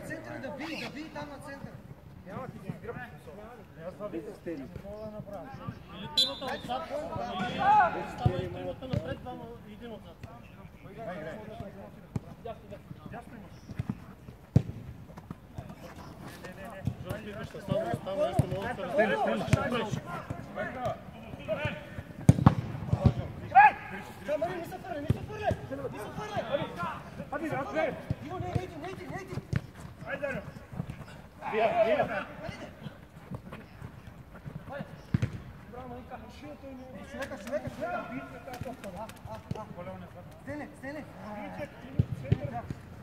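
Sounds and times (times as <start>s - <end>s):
players shouting: 5.9s - 9.2s, 17.1s - 32.9s
ball kicked thuds: 22.2s - 23.2s, 35.1s - 35.4s.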